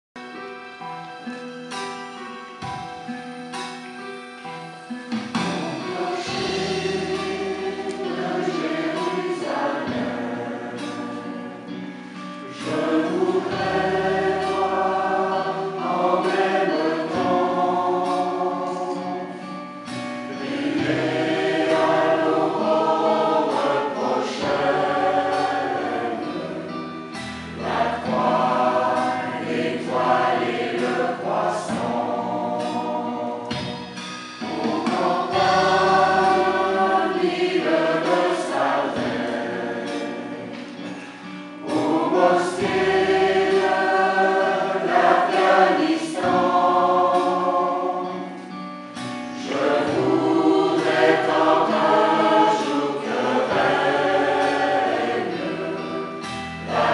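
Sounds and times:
mixed choir singing: 5.2 - 56.9.

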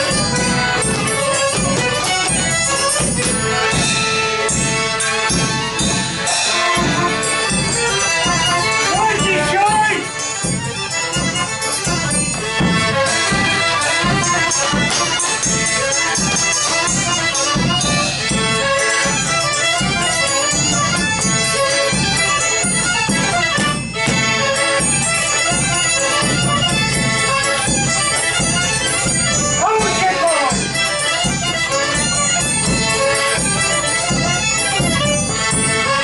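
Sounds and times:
fiddle playing: 0.0 - 36.0.

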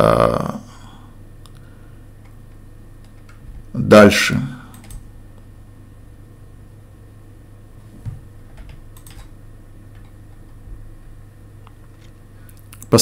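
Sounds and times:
steady low hum: 0.0 - 13.0
computer keyboard or mouse clicks: 8.6 - 9.3.

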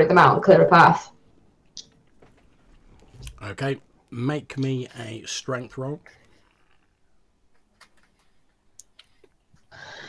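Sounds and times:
faint clicks: 7.5 - 9.7.

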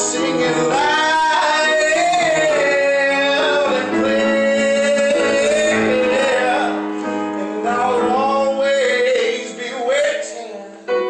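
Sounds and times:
man singing long held notes: 0.0 - 11.0
musical accompaniment: 0.0 - 11.0.

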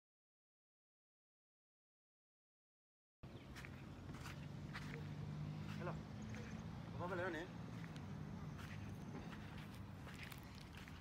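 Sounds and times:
low outdoor hum: 3.2 - 11.0
footsteps crunching in sand: 3.3 - 11.0.

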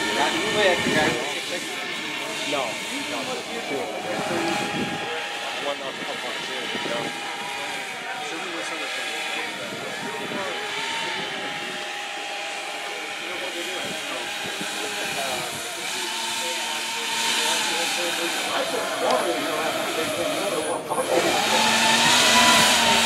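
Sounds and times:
electric fans whining: 0.0 - 23.0.

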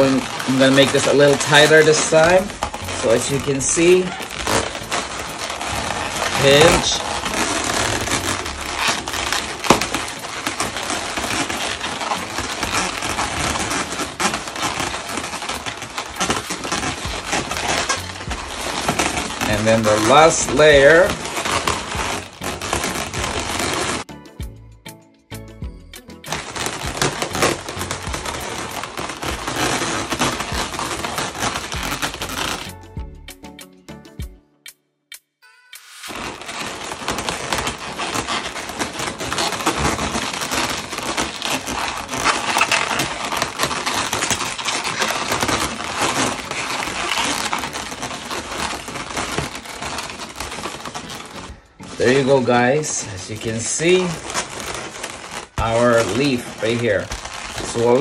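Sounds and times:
balloons rubbing and clicking: 0.0 - 24.6, 25.4 - 34.3, 35.1 - 58.0.

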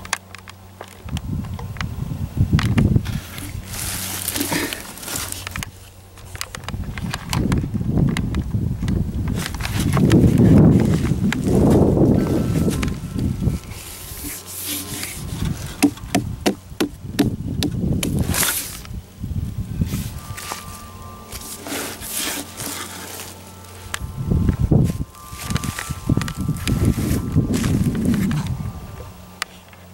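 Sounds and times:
low rumbling: 0.0 - 29.9
hand rubbing watermelon: 2.9 - 6.5, 9.3 - 18.9, 19.6 - 28.8.

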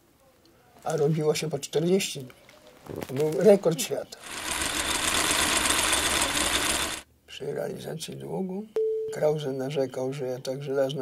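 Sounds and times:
film projector rattling: 4.2 - 7.0.

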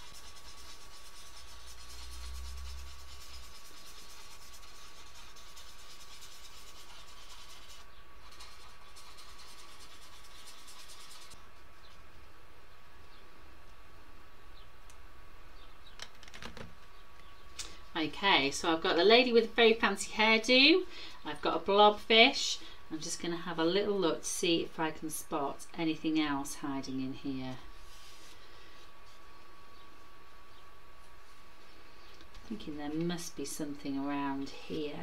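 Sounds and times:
pencil scribbling on paper: 0.0 - 11.4
faint electrical whine: 0.0 - 35.0.

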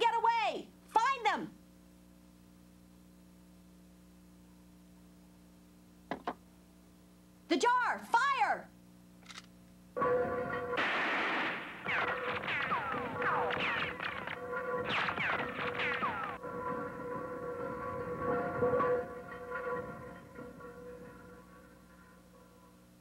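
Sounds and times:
held orchestral chord: 10.0 - 10.8, 16.4 - 23.0
rifle fire volley: 10.1 - 16.4
descending whistles of shots: 10.8 - 16.4.

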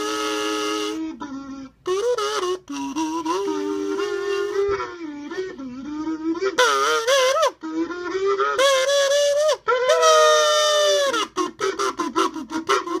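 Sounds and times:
kazoo melody: 0.0 - 13.0.

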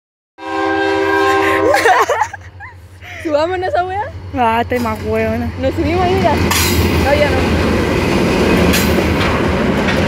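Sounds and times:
locomotive horn blast: 0.4 - 1.8.

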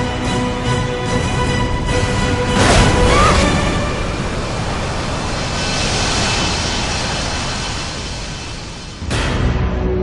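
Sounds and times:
jet engine and wind rush: 0.0 - 9.4.

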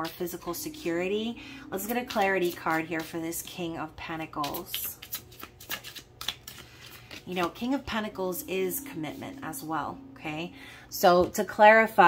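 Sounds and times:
cards being shuffled: 4.3 - 7.8.

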